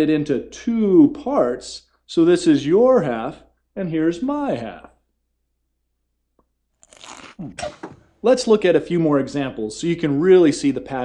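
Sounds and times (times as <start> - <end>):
person chewing candy: 6.8 - 7.8
person humming: 7.2 - 7.8.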